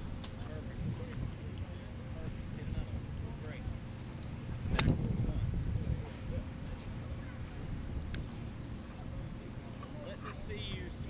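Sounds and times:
golf club striking ball: 4.7s - 5.1s.

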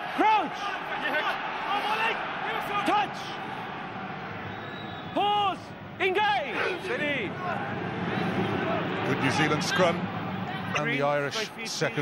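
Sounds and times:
stadium crowd: 0.0s - 12.0s.

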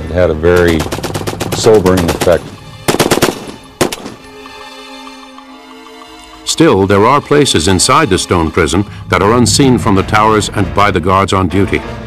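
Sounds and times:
gunshot: 0.6s - 4.2s
machine-gun fire: 0.6s - 4.2s
low sustained music chord: 1.6s - 11.1s.

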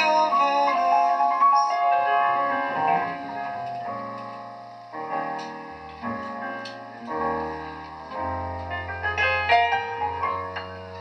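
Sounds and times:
low double bass notes: 0.0s - 11.0s
piano chords ringing: 0.0s - 11.0s.

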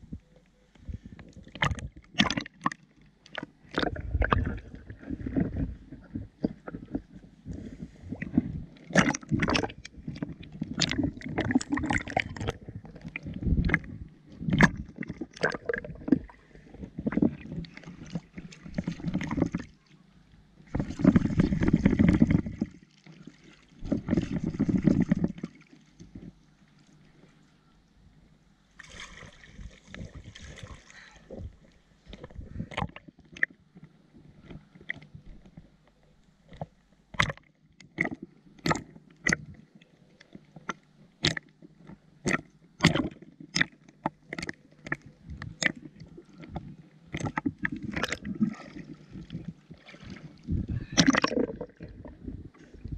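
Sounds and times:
water sloshing and splashing: 0.8s - 19.9s, 20.6s - 27.5s, 28.8s - 35.7s, 36.5s - 52.9s.

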